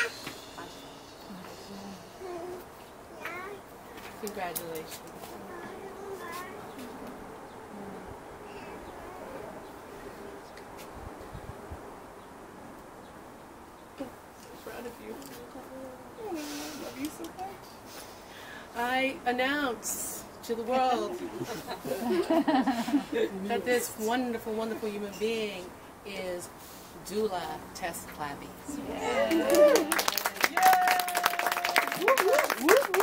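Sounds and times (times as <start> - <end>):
person cheering: 28.9 - 33.0
small group clapping: 29.2 - 33.0.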